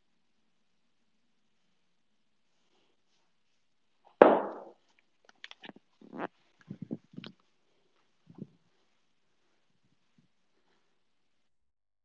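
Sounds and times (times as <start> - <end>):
thump on wooden floor: 4.2 - 4.7
bare footsteps: 4.2 - 4.8.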